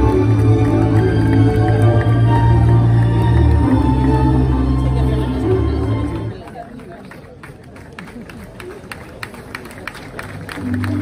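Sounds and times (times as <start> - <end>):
crowd murmuring: 0.0 - 11.0
hand claps: 6.5 - 11.0.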